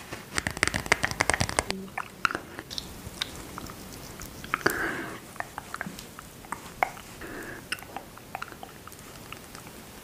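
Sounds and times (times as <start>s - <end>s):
smeary cream squish: 0.0s - 10.0s
sticky cream clicks: 0.3s - 4.8s.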